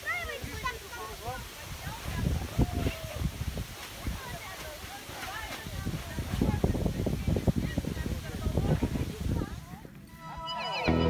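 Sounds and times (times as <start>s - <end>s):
voices: 0.0s - 11.0s.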